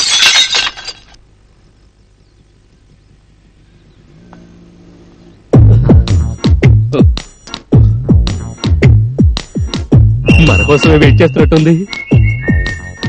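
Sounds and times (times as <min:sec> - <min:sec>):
car windshield glass shattering: 0:00.0 - 0:01.0
glass shards clattering: 0:00.0 - 0:01.2
electronic music with heavy beat: 0:05.6 - 0:13.0.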